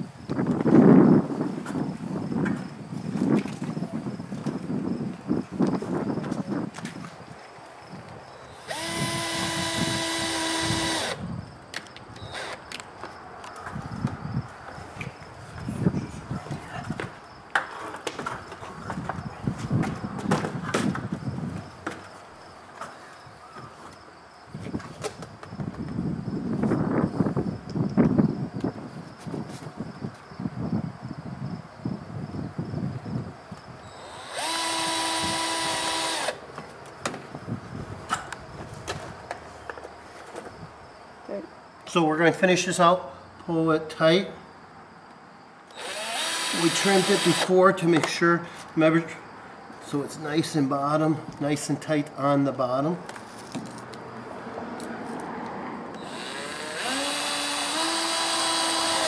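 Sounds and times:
cordless drill motor whine: 8.5 - 11.3, 12.2 - 12.6, 33.8 - 36.4, 45.7 - 47.6, 56.0 - 59.0.

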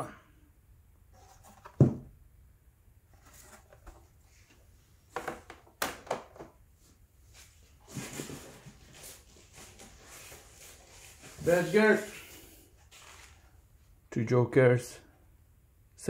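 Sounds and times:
scraping and handling noise: 1.1 - 2.1, 3.1 - 13.6.

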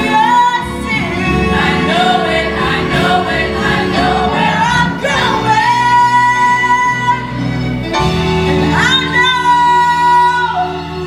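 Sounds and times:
choir singing with accompaniment: 0.0 - 9.2.

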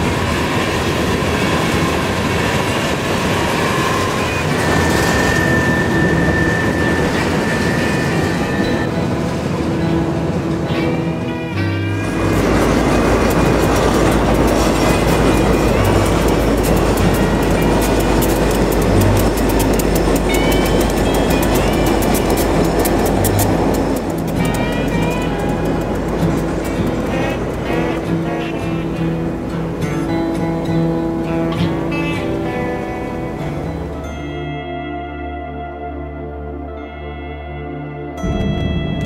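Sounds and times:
freight train rumbling past: 0.0 - 34.4, 38.2 - 39.0
instrumental background music: 4.7 - 39.0.

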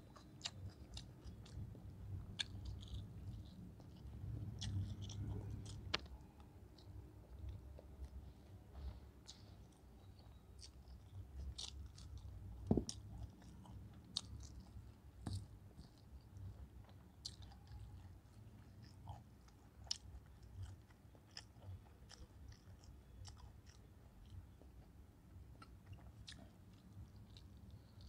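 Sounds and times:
close-up chewing: 0.0 - 28.0.

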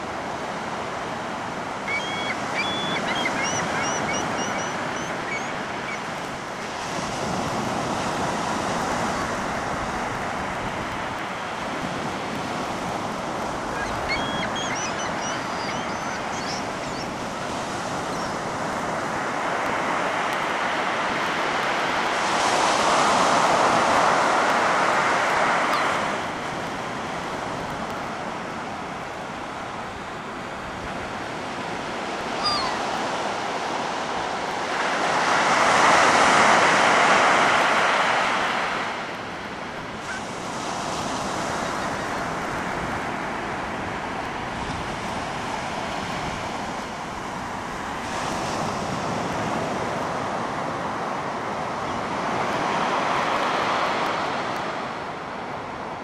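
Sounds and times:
ocean surf breaking on beach: 0.0 - 56.0.

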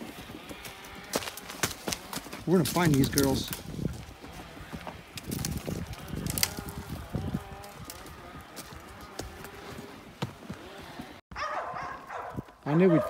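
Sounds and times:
horse hoofbeats on dry ground: 0.0 - 13.0.

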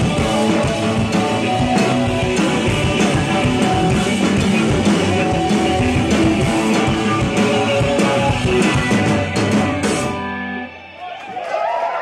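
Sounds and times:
keyboards: 0.0 - 11.0
strummed electric guitar: 0.0 - 11.0
drums: 0.0 - 12.0.

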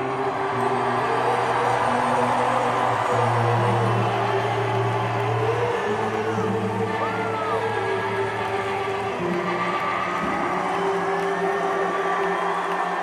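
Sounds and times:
sustained electric guitar: 0.0 - 13.0.

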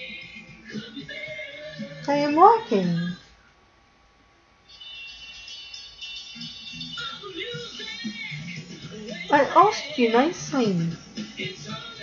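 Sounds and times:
television voices: 0.0 - 3.6, 4.6 - 12.0
faint television music: 0.0 - 12.0.

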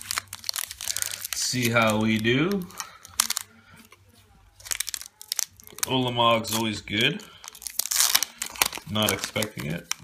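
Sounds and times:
foil wrapper crinkling and tearing: 0.0 - 10.0.

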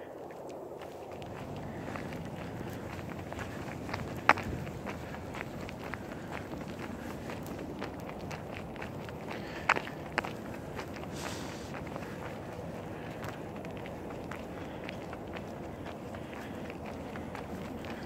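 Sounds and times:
footsteps on paved road: 0.0 - 18.0.

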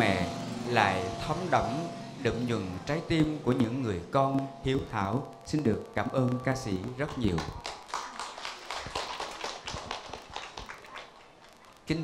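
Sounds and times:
audience applauding: 7.0 - 11.8.

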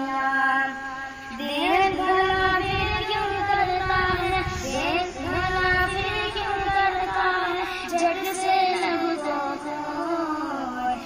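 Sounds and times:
boy singing devotional song: 0.0 - 11.0.

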